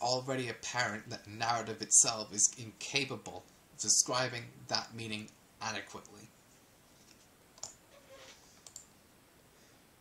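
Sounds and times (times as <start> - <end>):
faint short clicks: 8.6 - 8.9.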